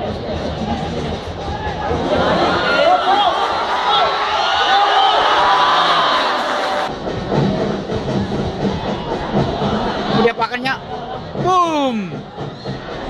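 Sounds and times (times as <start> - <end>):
rough crowd noise: 0.0 - 13.0.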